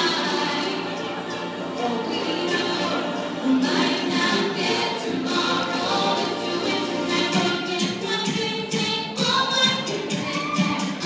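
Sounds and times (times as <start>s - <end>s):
girls singing a cappella: 0.0s - 11.0s.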